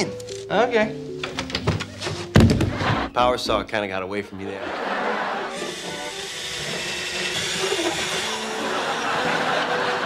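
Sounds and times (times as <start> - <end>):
electric drill boring through wall: 5.5 - 9.9.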